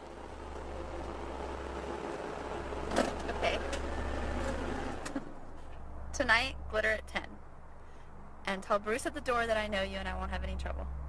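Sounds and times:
car engine humming: 0.0 - 5.6.

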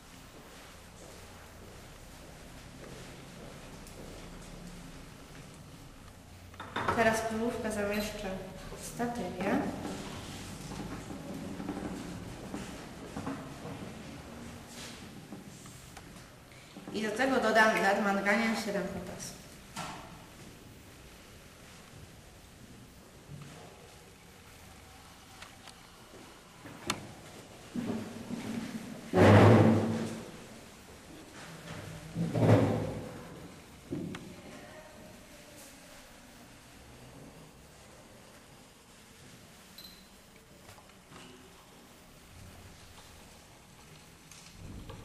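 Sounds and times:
room noise: 0.0 - 45.0.

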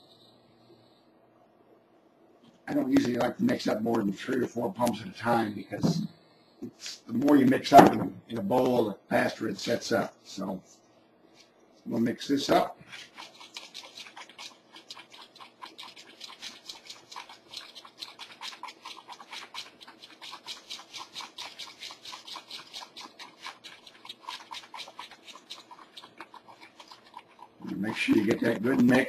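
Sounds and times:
wooden stick scraping inside cup: 12.8 - 29.0.

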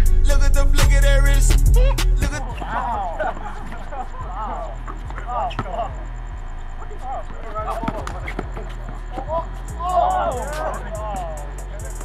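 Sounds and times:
low hum: 0.0 - 11.0
players shouting: 1.6 - 12.0
basketball thudding on court: 4.9 - 5.9, 7.7 - 9.4.

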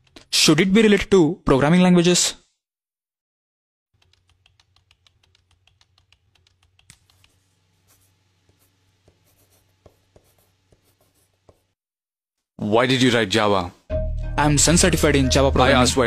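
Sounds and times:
laptop keyboard typing: 4.0 - 7.4.

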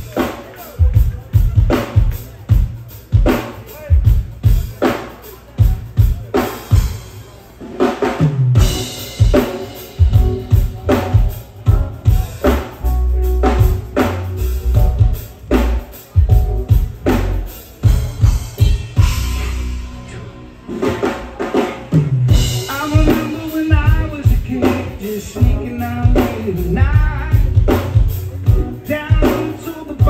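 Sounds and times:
reggae band playing: 0.0 - 30.0
sustained bass notes: 10.0 - 30.0.

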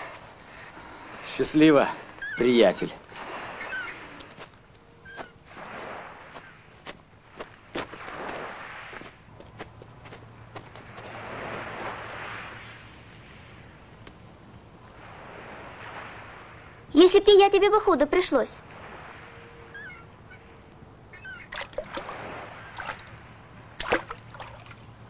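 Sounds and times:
sea surf washing on shore: 0.0 - 25.0
footsteps on dirt path: 4.2 - 12.5.

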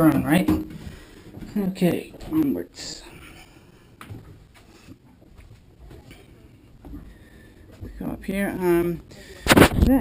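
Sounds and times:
faint footsteps: 0.0 - 10.0.

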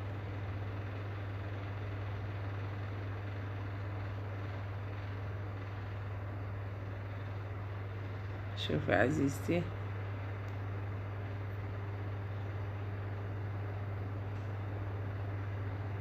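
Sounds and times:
electric fan whirring: 0.0 - 16.0.

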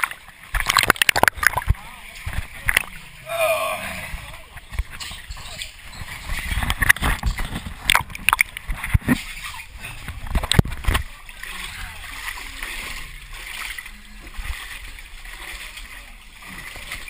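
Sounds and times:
muddy water splashing: 0.0 - 17.0.

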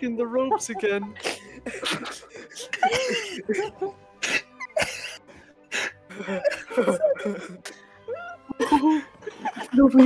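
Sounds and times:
person coughing sharply: 1.2 - 3.5, 4.2 - 5.2.

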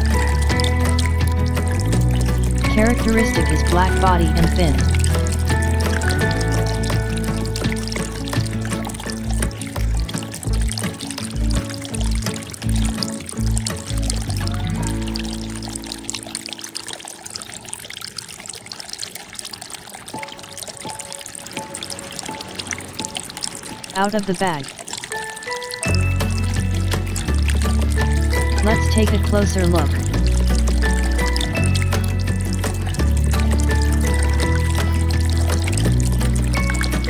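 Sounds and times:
background music: 0.0 - 16.8, 20.2 - 37.0.

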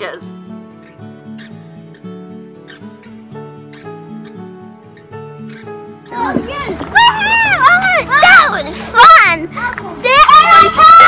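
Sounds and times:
girl's excited cries: 6.5 - 8.6, 10.1 - 11.0.

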